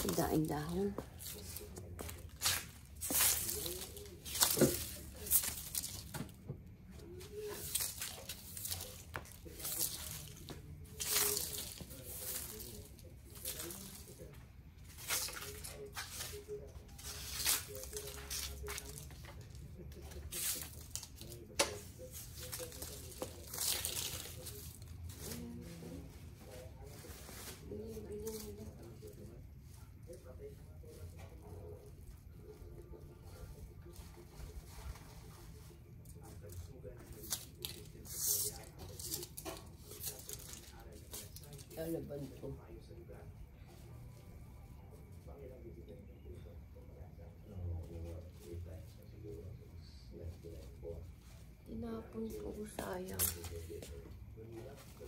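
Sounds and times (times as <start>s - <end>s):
broom sweeping leaves on concrete: 0.0s - 6.2s, 7.2s - 14.2s, 14.9s - 19.2s, 20.1s - 29.2s, 36.5s - 41.7s.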